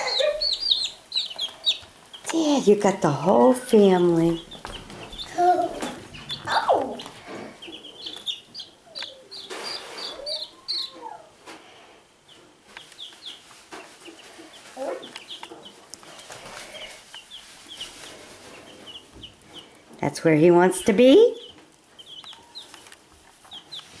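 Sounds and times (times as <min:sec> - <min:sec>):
baby chicks peeping: 0:00.0 - 0:24.0.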